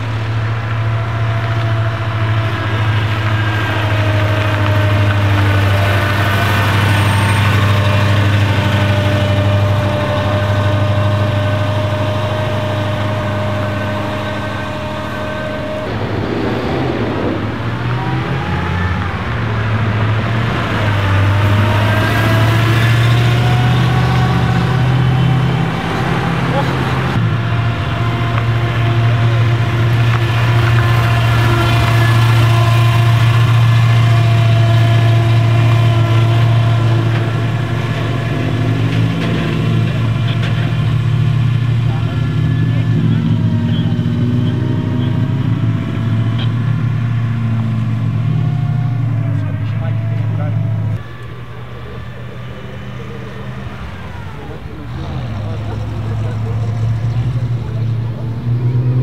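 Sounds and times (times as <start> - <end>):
car engine running: 0.0 - 59.0.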